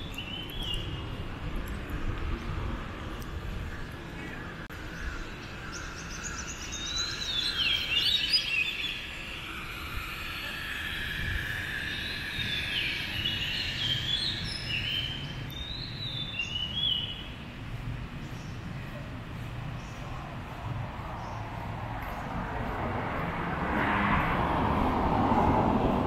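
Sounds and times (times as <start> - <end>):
songbirds chirping and whistling: 0.0 - 1.7, 2.4 - 23.2
low outdoor hum: 0.0 - 26.0.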